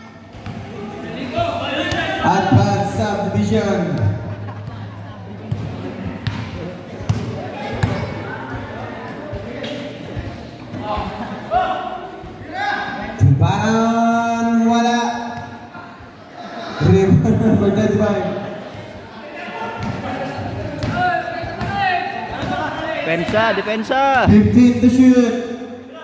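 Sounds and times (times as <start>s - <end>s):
basketball bouncing on court: 0.3s - 0.7s, 5.4s - 8.7s.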